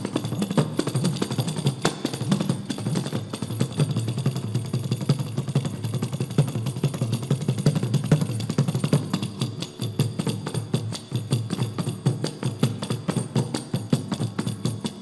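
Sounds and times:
light jingle: 0:00.0 - 0:15.0.

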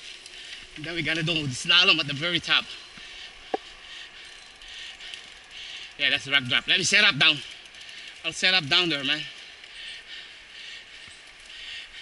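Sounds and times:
bike freehub clicking rapidly: 0:00.0 - 0:12.0.

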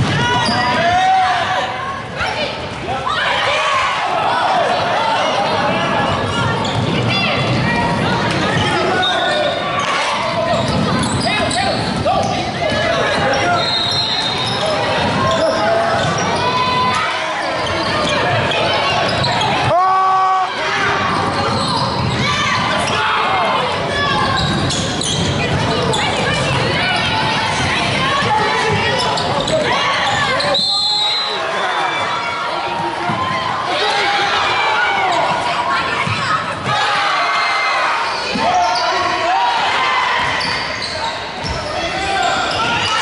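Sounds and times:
sneakers squeaking: 0:00.0 - 0:01.0, 0:04.6 - 0:19.8, 0:20.8 - 0:36.8, 0:37.4 - 0:43.0
people talking and calling out: 0:00.0 - 0:43.0.

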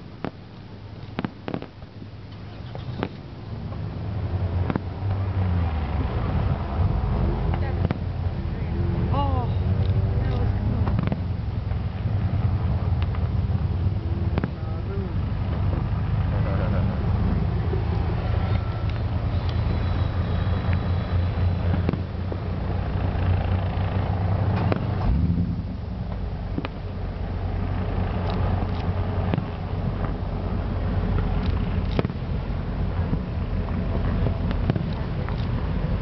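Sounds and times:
distant fireworks bursting: 0:00.0 - 0:06.1, 0:07.5 - 0:08.2, 0:10.4 - 0:16.0, 0:17.7 - 0:36.0
low rumble: 0:00.0 - 0:36.0
sharp pops: 0:00.2 - 0:03.3, 0:04.6 - 0:04.9, 0:10.3 - 0:11.3, 0:14.3 - 0:14.6, 0:21.7 - 0:22.2, 0:24.5 - 0:25.2, 0:31.2 - 0:32.3.

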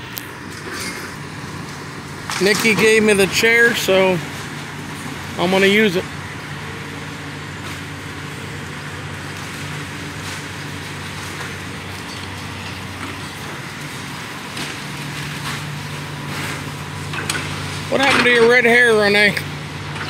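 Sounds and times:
diesel excavator engine droning: 0:00.0 - 0:20.0
outdoor background noise: 0:00.0 - 0:20.0.

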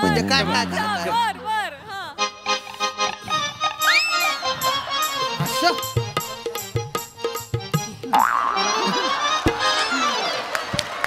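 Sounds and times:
music backing: 0:02.1 - 0:11.0.

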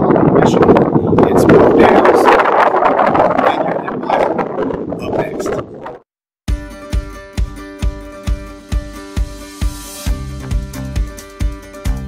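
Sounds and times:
wind buffeting microphone: 0:00.0 - 0:06.1.

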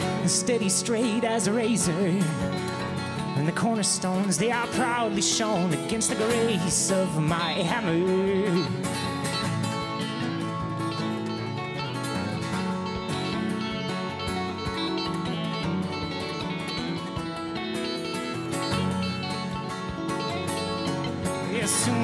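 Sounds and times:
picked banjo: 0:00.0 - 0:22.0
strummed acoustic guitar: 0:00.0 - 0:22.0.

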